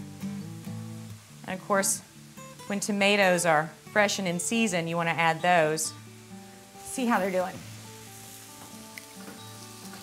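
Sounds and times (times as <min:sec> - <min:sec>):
soft background music: 0:00.0 - 0:10.0
burger patties sizzling: 0:05.6 - 0:10.0.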